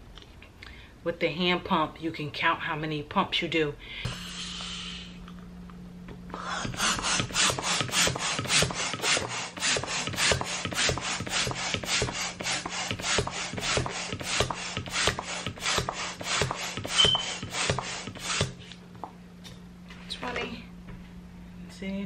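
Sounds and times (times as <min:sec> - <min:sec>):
hand balloon pump rasping: 0:06.4 - 0:18.8.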